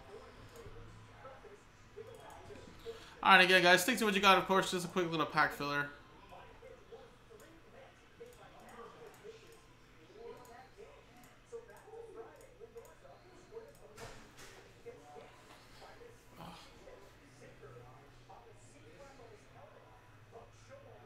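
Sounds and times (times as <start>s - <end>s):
faint indistinct voices: 0.0s - 3.9s, 5.9s - 21.0s.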